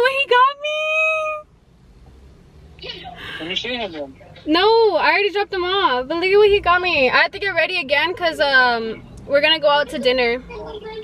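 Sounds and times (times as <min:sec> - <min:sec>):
woman speaking: 0:00.0 - 0:01.4, 0:04.4 - 0:11.0
car cabin background: 0:00.0 - 0:11.0.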